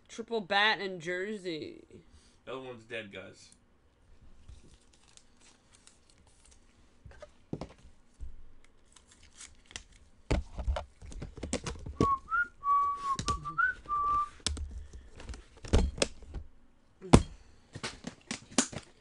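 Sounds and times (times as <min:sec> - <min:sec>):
trading cards being handled: 0:04.4 - 0:07.9, 0:08.6 - 0:12.1
person whistling a tune: 0:12.0 - 0:14.4.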